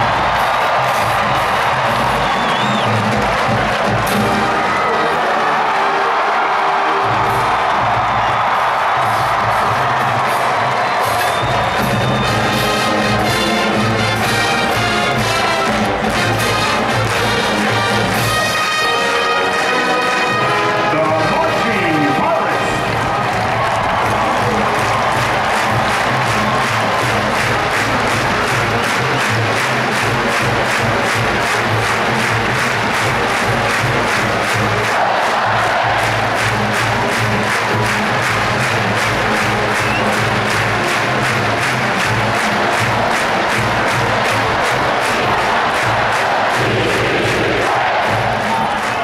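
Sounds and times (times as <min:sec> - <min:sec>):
crowd noise: 0:00.0 - 0:49.0
marching band playing: 0:00.0 - 0:49.0.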